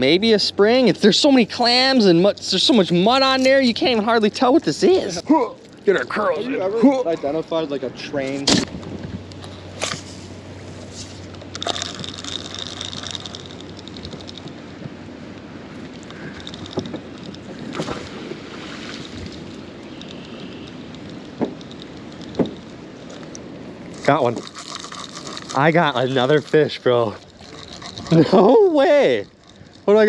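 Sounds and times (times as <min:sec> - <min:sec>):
low hum: 0:00.0 - 0:30.0
water sloshing against boat hull: 0:08.6 - 0:28.2
sharp clicks and knocks: 0:19.9 - 0:23.4.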